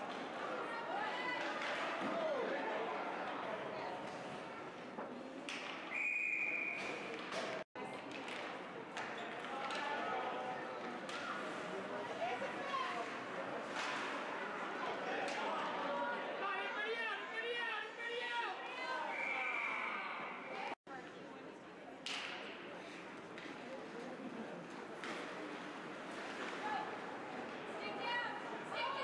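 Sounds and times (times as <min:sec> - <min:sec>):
hockey sticks and puck clacking: 0:01.4 - 0:02.2, 0:05.4 - 0:06.0, 0:06.8 - 0:10.2, 0:10.8 - 0:11.6.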